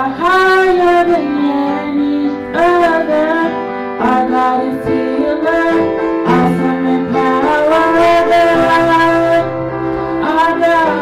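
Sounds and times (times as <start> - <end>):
piano accompaniment: 0.0 - 11.0
woman singing into microphone: 0.0 - 11.0.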